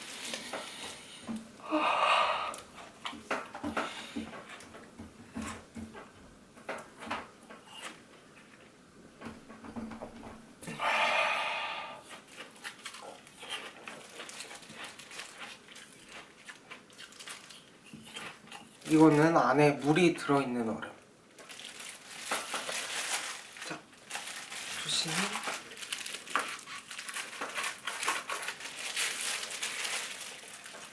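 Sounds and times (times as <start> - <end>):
loud breathy gasp: 1.6 - 2.6, 10.7 - 12.0
chewing crunchy ice: 12.1 - 19.1.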